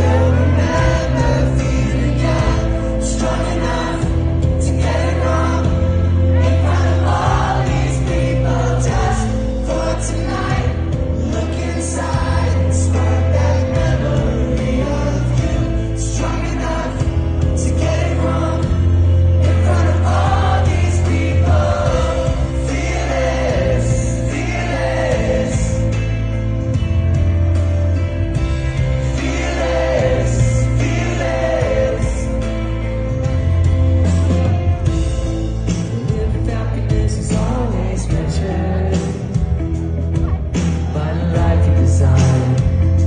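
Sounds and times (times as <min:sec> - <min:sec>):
crowd singing: 0:00.0 - 0:43.0
heavy bass line: 0:00.0 - 0:43.0
live pop-rock band playing: 0:00.0 - 0:43.0.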